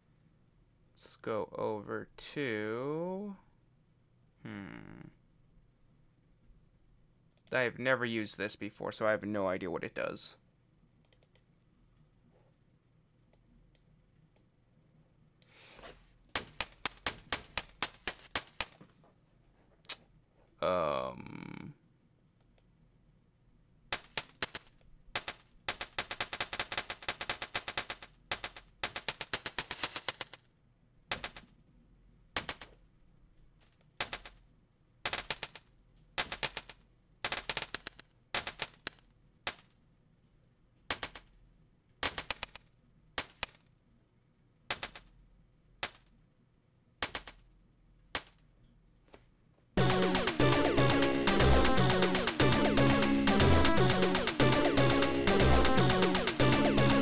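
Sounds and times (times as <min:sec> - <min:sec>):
electronic percussion hits: 0:49.8 - 0:57.0.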